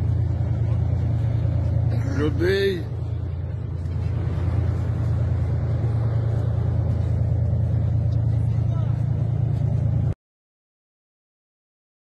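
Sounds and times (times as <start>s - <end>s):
steady low rumble: 0.0s - 10.2s
faint voices: 0.1s - 5.0s.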